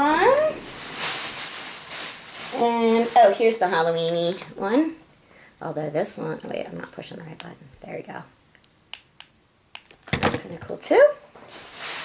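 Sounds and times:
plastic bag rustling: 0.0 - 4.4, 11.4 - 12.0.

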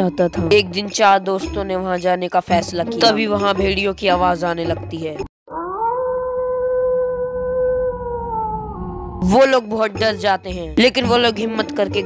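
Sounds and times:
wolf howling: 5.5 - 9.2.

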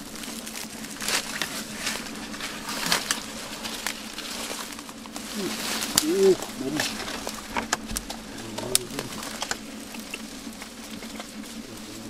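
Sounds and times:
dry grass and bamboo crackling: 0.0 - 12.0.

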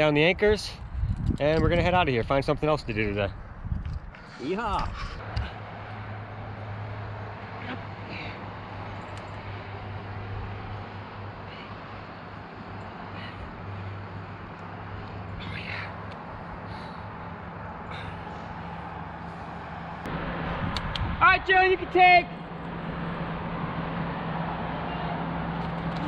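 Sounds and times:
distant highway traffic hum: 0.0 - 26.0.

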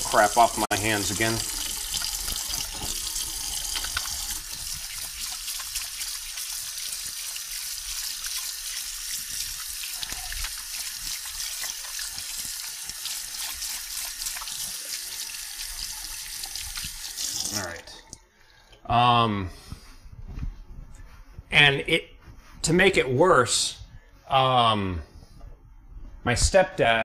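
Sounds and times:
tap running into sink: 1.9 - 5.2
hands scrubbing under water: 1.9 - 17.7.

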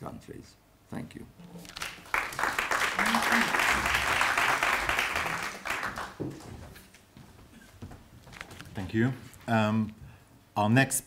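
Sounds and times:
audience applauding: 1.6 - 6.8.

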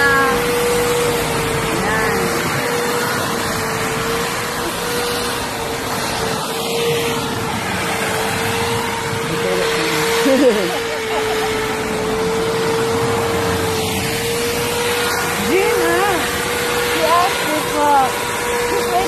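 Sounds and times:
electric hedge trimmer running: 0.0 - 19.0.

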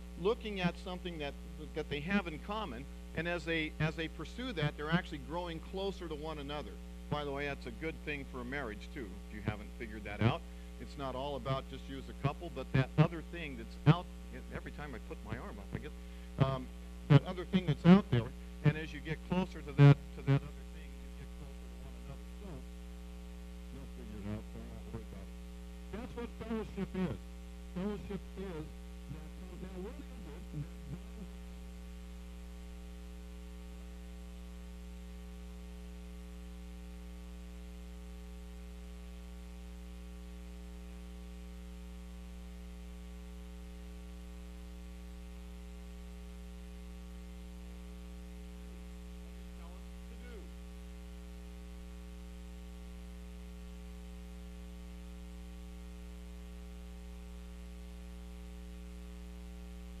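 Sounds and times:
electrical mains hum: 0.0 - 60.0.

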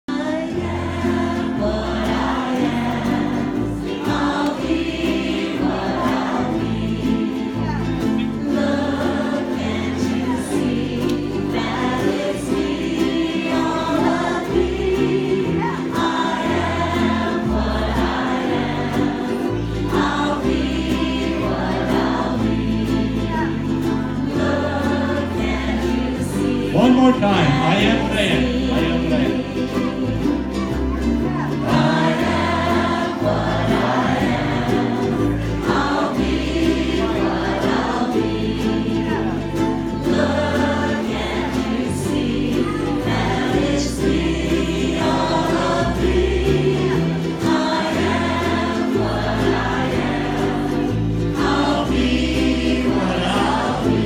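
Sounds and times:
crowd singing in unison: 0.0 - 54.0
ukuleles strummed together: 0.0 - 54.0
bass line: 1.0 - 54.0.

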